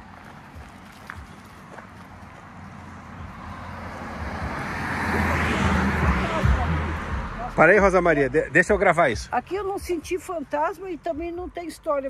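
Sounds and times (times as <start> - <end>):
vehicle tyre noise: 0.0 - 10.4
low engine hum: 0.0 - 11.6.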